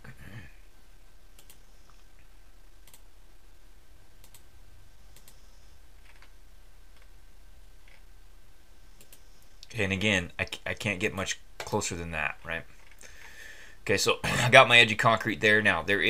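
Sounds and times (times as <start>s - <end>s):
low steady hum: 0.0s - 16.0s
computer mouse clicking: 1.3s - 1.6s, 2.8s - 3.0s, 4.2s - 4.4s, 5.1s - 5.4s, 6.0s - 6.3s, 9.0s - 9.2s.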